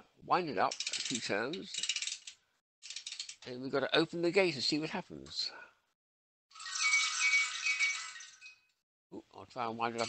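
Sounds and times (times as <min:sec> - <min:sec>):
clockwork tin toy rattling: 0:00.6 - 0:03.5, 0:06.5 - 0:08.6.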